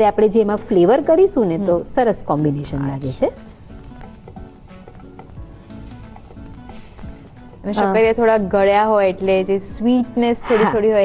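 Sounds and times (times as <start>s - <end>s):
food sizzling in frying pan: 2.4s - 9.0s
spatula knocking on pan: 2.7s - 8.7s
metal spatula scraping pan: 2.8s - 8.6s.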